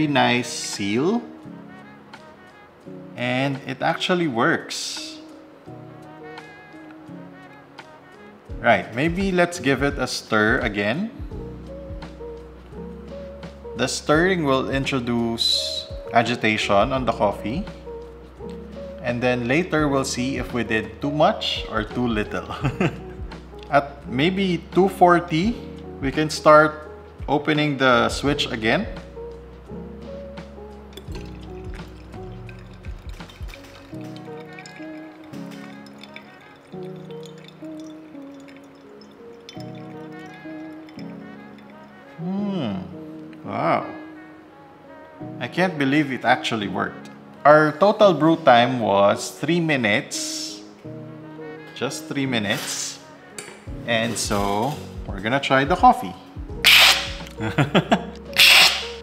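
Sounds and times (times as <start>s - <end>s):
person slurping coffee: 56.7s - 57.4s, 58.4s - 59.0s.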